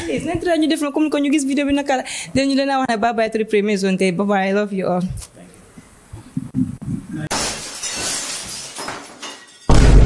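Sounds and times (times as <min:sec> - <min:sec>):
breaking glass crash effect: 0:07.3 - 0:10.0.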